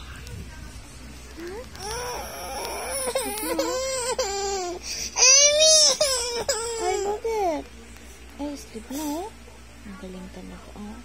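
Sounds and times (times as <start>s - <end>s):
infant whimpering cries: 1.8s - 7.6s.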